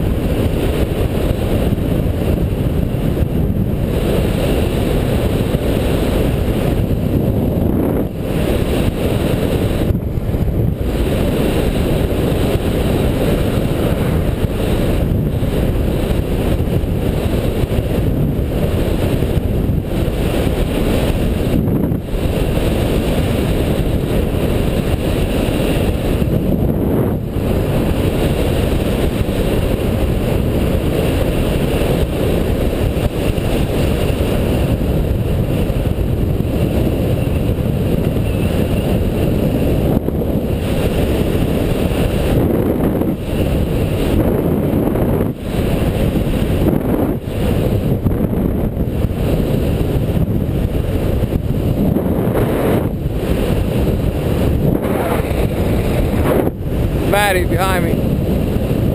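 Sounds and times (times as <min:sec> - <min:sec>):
wind rushing over microphone: 0:00.0 - 0:58.9.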